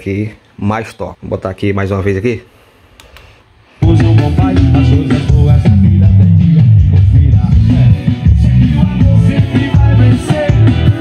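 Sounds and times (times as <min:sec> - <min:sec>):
song with heavy bass: 0:03.8 - 0:11.0.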